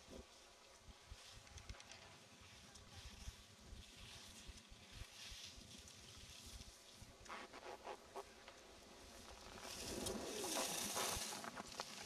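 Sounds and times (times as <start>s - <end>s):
skis scraping on packed snow: 2.1s - 12.0s.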